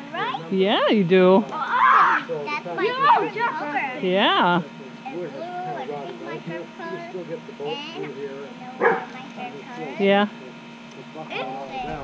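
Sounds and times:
dog barking: 0:08.8 - 0:09.2.

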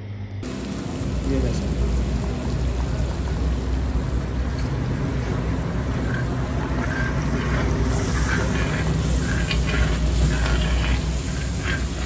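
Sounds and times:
curry sizzling in a pan: 0:00.4 - 0:12.0
metal spatula stirring: 0:04.6 - 0:12.0.

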